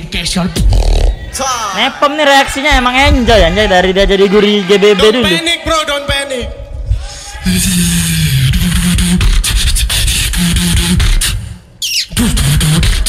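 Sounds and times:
beatboxing into a microphone: 0:00.4 - 0:01.2, 0:07.4 - 0:13.0.

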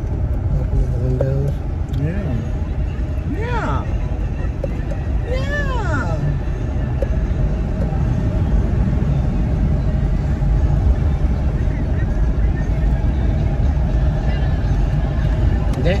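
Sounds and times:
road and engine drone in car: 0:00.0 - 0:16.0.

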